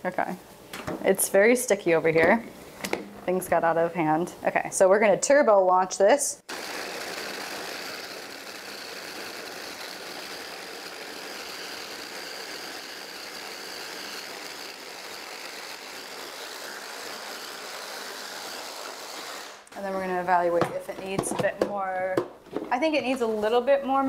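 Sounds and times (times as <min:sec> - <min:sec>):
immersion blender whirring: 0:06.5 - 0:19.8.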